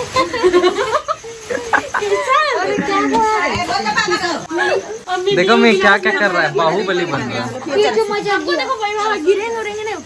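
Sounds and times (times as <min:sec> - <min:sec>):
children laughing and shouting: 0:00.0 - 0:10.0.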